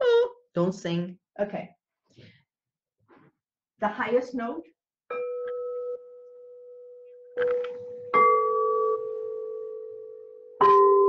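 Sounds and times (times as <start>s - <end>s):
singing bowl ringing: 5.1s - 7.4s, 8.0s - 11.0s.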